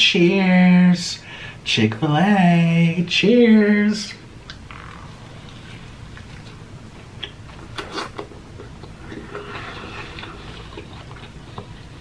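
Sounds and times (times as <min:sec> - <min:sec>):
person chewing: 0:05.3 - 0:12.0.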